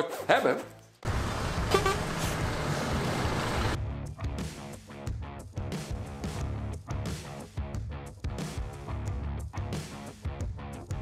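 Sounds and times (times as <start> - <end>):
lorry engine and tyre rumble: 1.1 - 3.8
short horn toot: 1.6 - 2.5.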